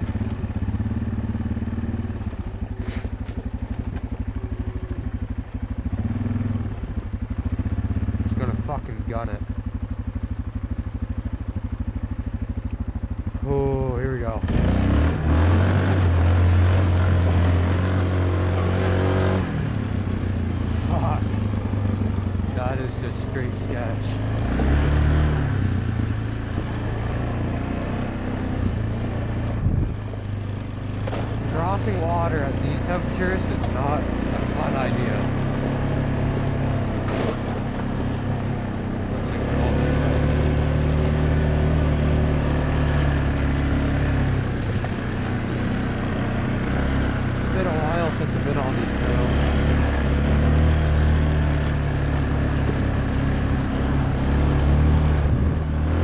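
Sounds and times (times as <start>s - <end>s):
atv engine revving: 0.0s - 56.0s.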